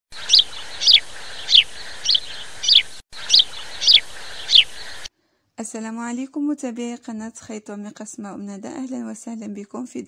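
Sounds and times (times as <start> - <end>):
bird chirping: 0.1 - 5.1
steady background hiss: 0.2 - 5.1.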